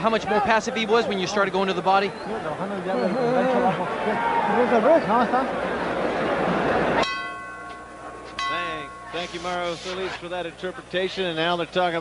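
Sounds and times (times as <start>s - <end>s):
boxing ring bell ringing: 7.0s - 9.6s.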